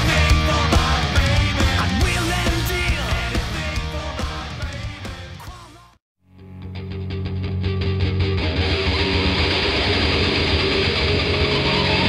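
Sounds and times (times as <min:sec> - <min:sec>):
heavy rock music: 0:00.0 - 0:12.0.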